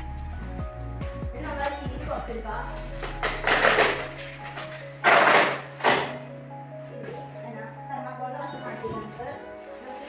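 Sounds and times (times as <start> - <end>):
background music: 0.0 - 10.0
polystyrene foam scraping: 8.7 - 10.0.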